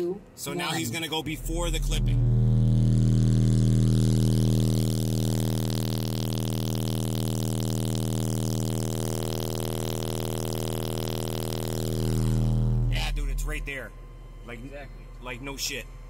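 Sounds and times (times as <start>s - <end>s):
subwoofer bass test tone: 1.2s - 14.5s.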